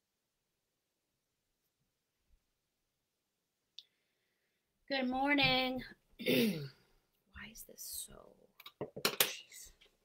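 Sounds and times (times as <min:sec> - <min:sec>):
woman speaking: 0:04.9 - 0:05.9.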